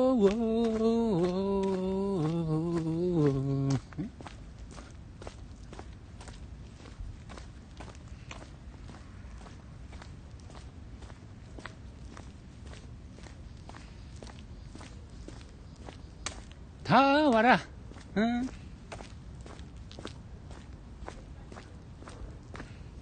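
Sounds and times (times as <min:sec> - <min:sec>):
footsteps walking: 0:00.0 - 0:23.0.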